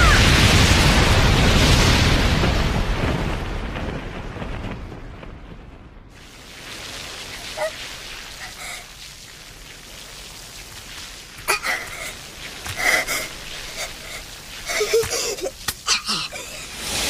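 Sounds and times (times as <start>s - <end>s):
flames hissing and crackling: 0.0s - 17.0s.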